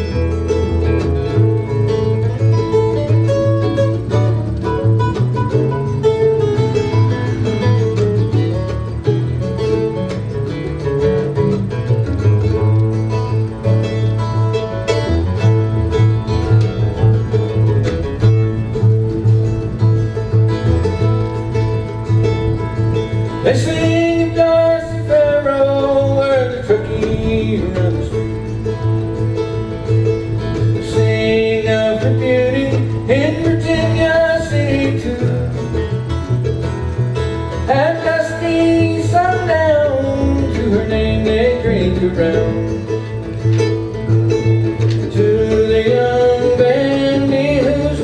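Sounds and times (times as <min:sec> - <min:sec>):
acoustic guitar: 0:00.0 - 0:48.0
bluegrass band playing: 0:00.0 - 0:48.0
mandolin: 0:00.0 - 0:48.0
upright bass plucking: 0:00.0 - 0:48.0.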